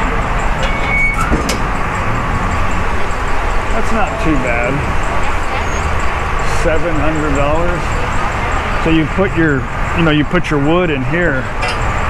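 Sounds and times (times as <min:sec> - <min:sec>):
traffic passing: 0:00.0 - 0:12.0
high squeal: 0:00.4 - 0:08.0.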